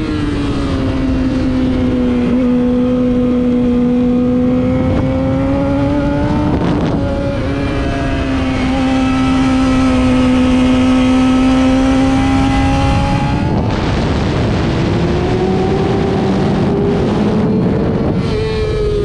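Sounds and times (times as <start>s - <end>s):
race car engine droning: 0.0s - 19.0s.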